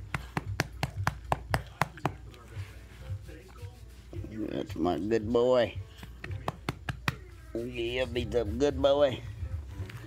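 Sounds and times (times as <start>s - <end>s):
hand patting dog: 0.0s - 2.6s, 5.8s - 7.4s.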